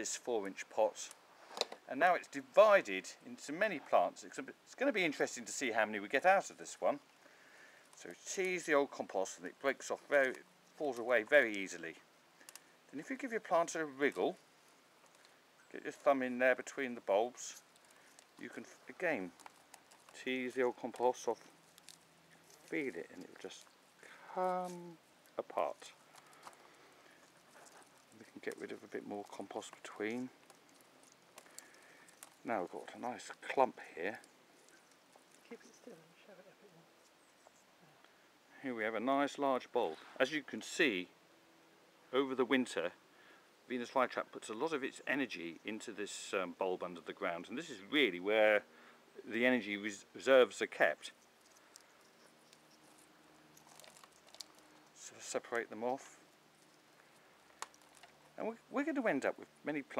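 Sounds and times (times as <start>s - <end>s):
soil crackling as roots part: 0.0s - 35.9s, 49.6s - 59.9s
hands rustling plant bulbs: 16.0s - 35.8s, 50.6s - 59.3s.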